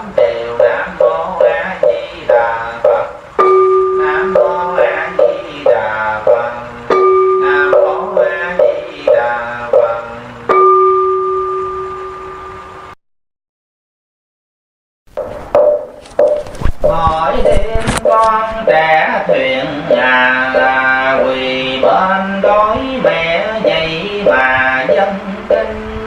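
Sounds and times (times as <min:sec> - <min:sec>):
rhythmic chanting: 0:00.0 - 0:11.1, 0:15.2 - 0:26.0
bell struck and ringing: 0:06.3 - 0:09.2, 0:09.8 - 0:12.8, 0:15.2 - 0:16.5.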